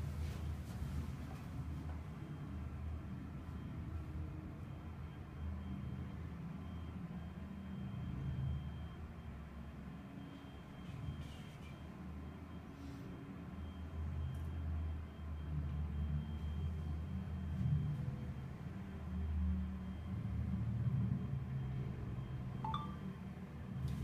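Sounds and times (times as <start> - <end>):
brief chirp: 22.7 - 23.0.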